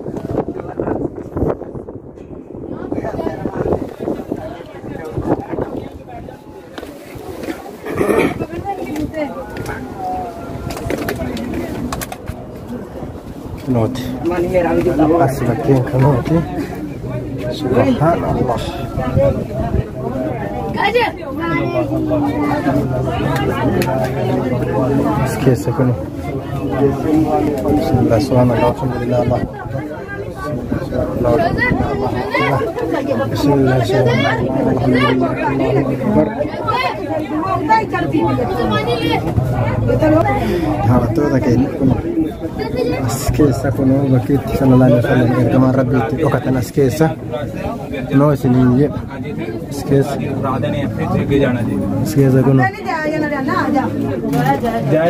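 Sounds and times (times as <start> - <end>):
people chattering: 0.0 - 55.0
people's voices: 0.0 - 55.0.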